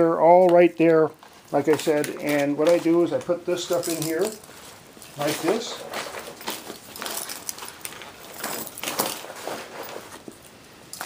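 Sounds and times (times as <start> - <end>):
clips clinking: 0.4 - 11.0
papers rustling in fabric bag: 1.2 - 10.4.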